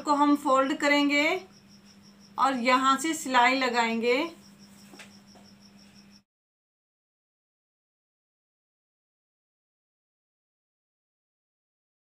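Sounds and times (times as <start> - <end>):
high insect chirps: 0.0 - 6.3.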